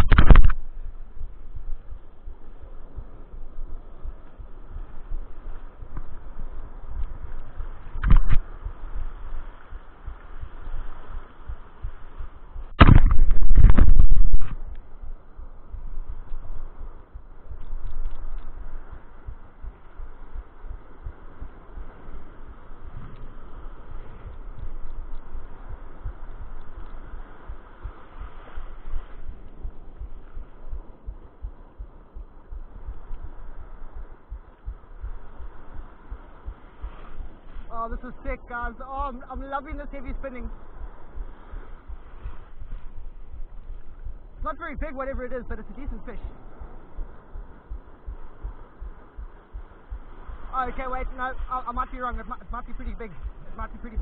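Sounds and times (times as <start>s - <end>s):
sharp knock: 12.8s - 14.5s.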